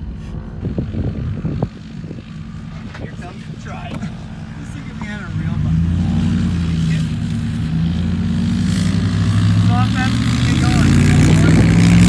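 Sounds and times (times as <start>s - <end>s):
motor engine droning: 0.0s - 12.0s.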